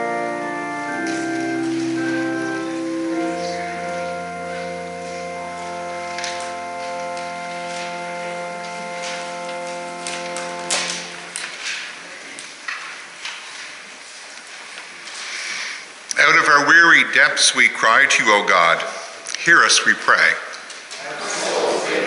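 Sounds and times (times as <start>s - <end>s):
organ playing slow prelude: 0.0s - 11.9s
clicks: 6.1s - 11.8s.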